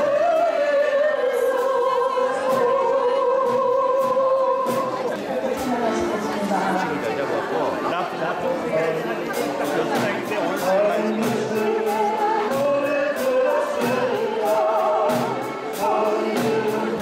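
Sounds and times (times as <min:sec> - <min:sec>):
people singing: 0:00.0 - 0:06.8, 0:08.7 - 0:17.0
voices over music: 0:00.0 - 0:17.0
accordions playing: 0:05.6 - 0:17.0.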